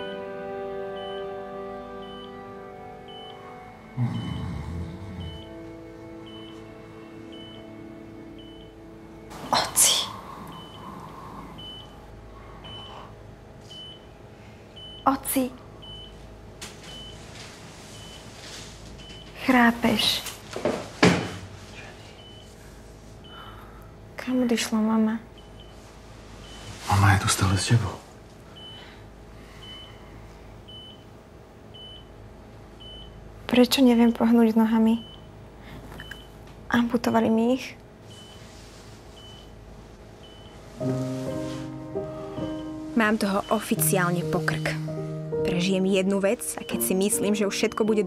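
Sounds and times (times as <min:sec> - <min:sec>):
faint room hum: 0:00.0 - 0:48.0
medical monitor beeps: 0:01.0 - 0:01.4, 0:02.0 - 0:02.4, 0:03.0 - 0:03.5, 0:05.2 - 0:05.6, 0:06.2 - 0:06.7, 0:07.3 - 0:08.8, 0:10.4 - 0:12.0, 0:12.6 - 0:14.1, 0:14.8 - 0:16.2, 0:16.8 - 0:17.2, 0:17.9 - 0:18.3, 0:19.0 - 0:20.2, 0:22.2 - 0:22.6, 0:25.4 - 0:25.8, 0:26.4 - 0:26.8, 0:28.6 - 0:28.9, 0:29.6 - 0:30.0, 0:30.7 - 0:31.1, 0:31.7 - 0:32.1, 0:32.8 - 0:33.2, 0:34.8 - 0:35.3, 0:36.0 - 0:36.4, 0:38.1 - 0:38.5, 0:39.2 - 0:39.6, 0:40.2 - 0:40.6, 0:42.4 - 0:44.8, 0:45.5 - 0:48.0.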